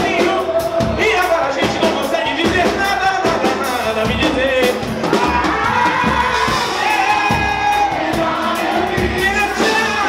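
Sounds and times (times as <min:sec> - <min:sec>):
audience singing along: 0:00.0 - 0:01.7, 0:04.9 - 0:10.0
voices singing together: 0:00.0 - 0:02.1, 0:04.8 - 0:10.0
steady percussion beat: 0:00.0 - 0:10.0.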